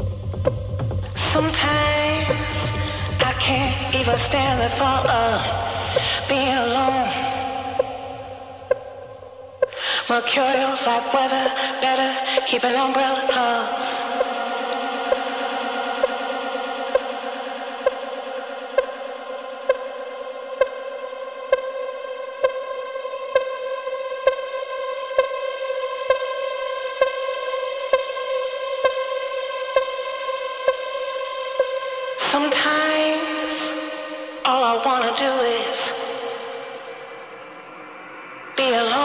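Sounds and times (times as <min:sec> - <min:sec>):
held synthesizer chord: 0:13.6 - 0:39.0.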